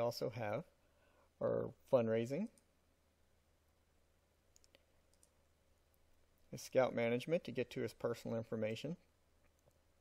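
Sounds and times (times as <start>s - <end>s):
low room hum: 0.0s - 10.0s
computer mouse clicks: 4.5s - 5.4s, 9.4s - 9.8s.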